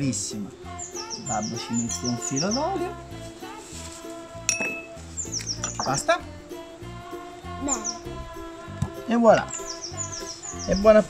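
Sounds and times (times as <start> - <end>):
light background music: 0.0 - 11.0
tableware clink: 4.5 - 5.0.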